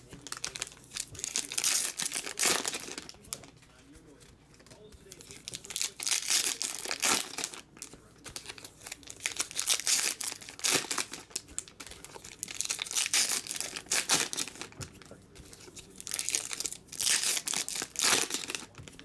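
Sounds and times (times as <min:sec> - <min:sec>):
foil wrappers tearing: 0:00.0 - 0:03.5, 0:05.1 - 0:19.0
foil wrappers crinkling: 0:00.0 - 0:19.0.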